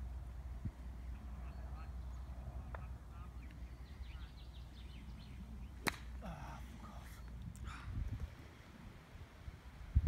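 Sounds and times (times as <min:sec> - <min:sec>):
golf club striking ball: 0:05.8 - 0:06.2.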